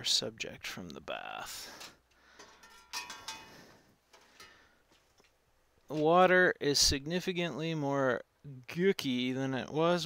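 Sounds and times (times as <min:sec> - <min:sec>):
wire basket clinking on steel tank: 0:02.4 - 0:03.7.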